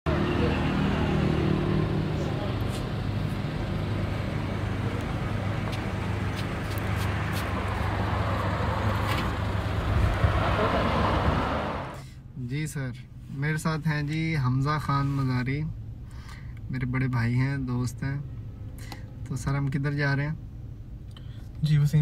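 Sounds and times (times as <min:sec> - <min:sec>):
outdoor rumble and rush: 0:00.1 - 0:12.2
vehicle engine idling: 0:00.1 - 0:12.3.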